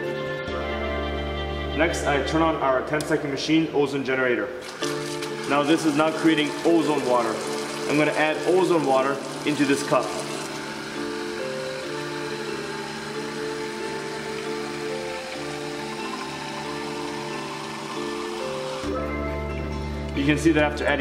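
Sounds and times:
background music with stepping melody: 0.0s - 3.7s, 4.6s - 21.0s
water running from faucet into jar: 4.6s - 18.9s.

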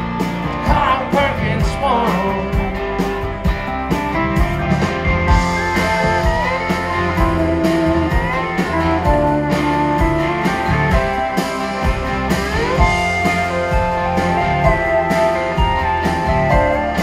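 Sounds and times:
rock band playing live: 0.0s - 17.0s
sliding electric guitar lead: 0.0s - 17.0s.

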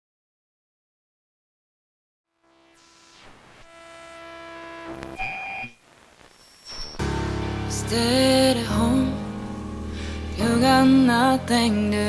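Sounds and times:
bright high synth beep: 5.2s - 5.8s, 6.4s - 7.1s
held synth chord: 7.0s - 12.0s.

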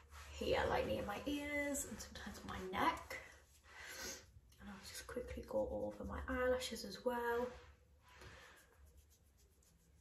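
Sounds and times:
cotton pad rubbing: 0.0s - 5.9s, 7.3s - 10.0s.

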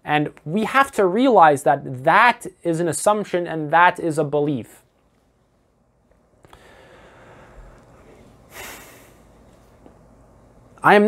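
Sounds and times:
man breathing through nose: 6.4s - 9.3s.

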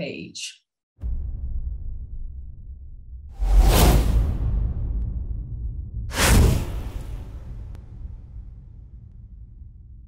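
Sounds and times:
cinematic whoosh: 1.0s - 9.6s
deep bass rumble: 1.0s - 10.0s.

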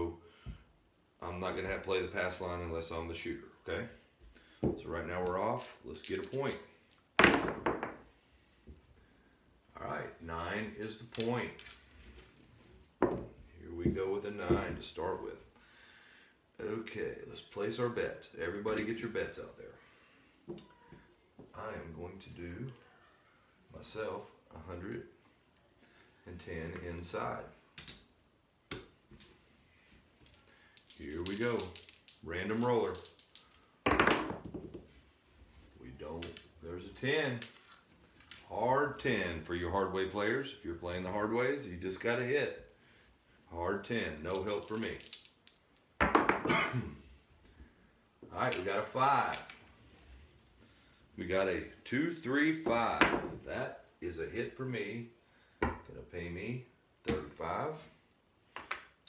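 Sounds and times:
dice hitting felt table: 7.2s - 8.0s, 30.2s - 34.9s, 44.3s - 46.5s, 58.5s - 59.0s
dice clicking as they tumble: 30.2s - 33.7s, 44.3s - 45.9s.

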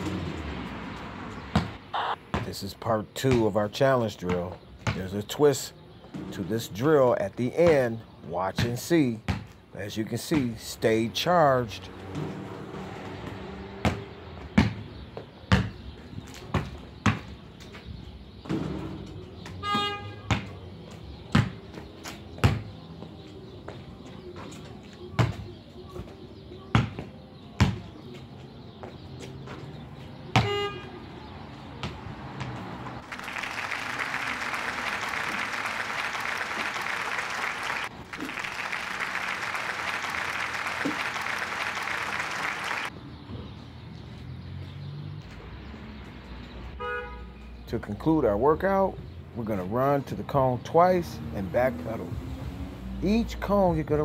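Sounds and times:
basketball bouncing on concrete: 1.3s - 2.6s, 3.2s - 3.6s, 4.2s - 5.2s, 8.6s - 9.6s, 13.2s - 17.4s, 18.4s - 28.0s, 28.8s - 30.7s, 31.8s - 32.9s.

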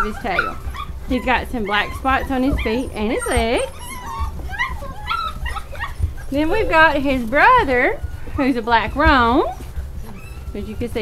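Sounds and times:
handling rumble: 0.0s - 11.0s
puppies whimpering and yipping: 0.0s - 11.0s.

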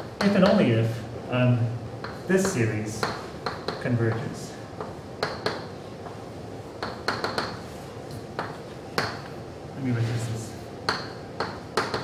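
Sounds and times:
chalk tapping on blackboard: 2.0s - 6.2s, 6.8s - 9.3s, 10.9s - 12.0s.

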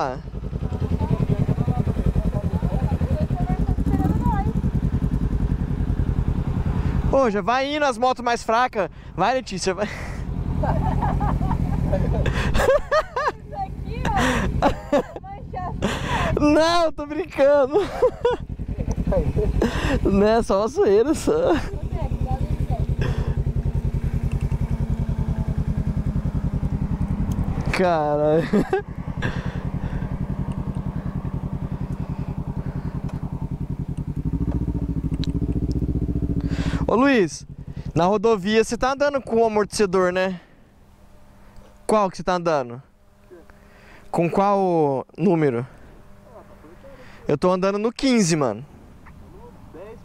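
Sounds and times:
motorcycle engines idling: 0.0s - 50.0s.

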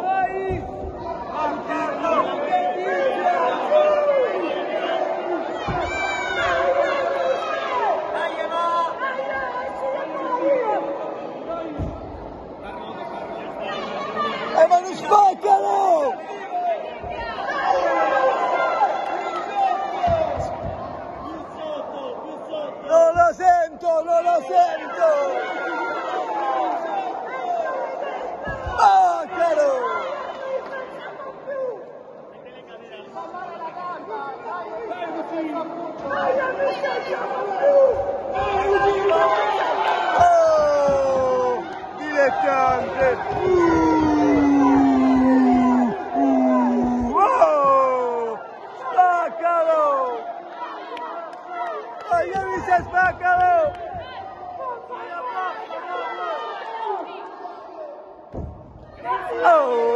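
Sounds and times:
spectators chattering: 0.0s - 59.9s.

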